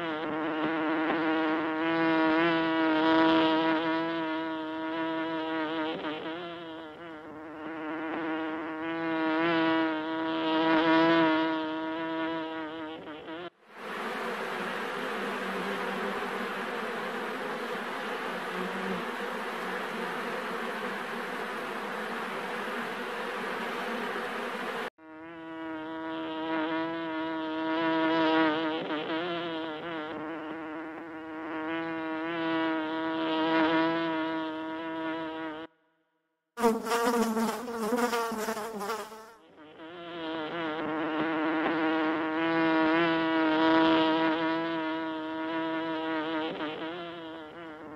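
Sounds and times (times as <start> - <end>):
bees buzzing: 0.0 - 35.7, 36.6 - 47.9
dense hissing swarm: 13.6 - 24.9.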